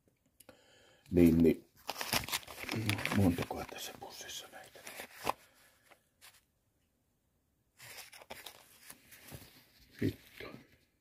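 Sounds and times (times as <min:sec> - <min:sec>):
plastic bag crinkling: 0:01.8 - 0:03.8.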